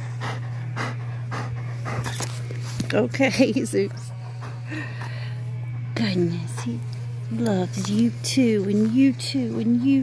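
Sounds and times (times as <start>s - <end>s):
large dog panting: 0.0s - 2.7s, 3.6s - 5.3s, 8.9s - 10.0s.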